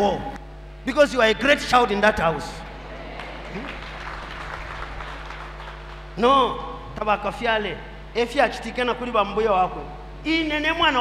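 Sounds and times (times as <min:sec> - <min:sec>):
low steady hum: 0:00.0 - 0:11.0
congregation applauding: 0:02.7 - 0:06.2.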